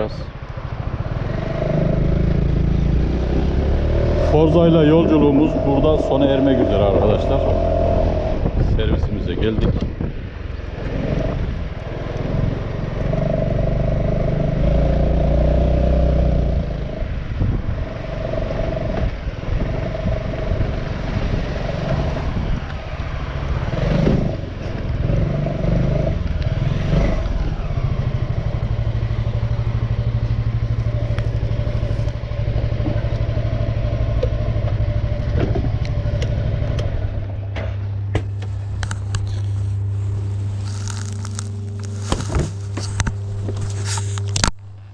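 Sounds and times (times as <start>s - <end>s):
scooter engine running: 9.8s - 44.9s.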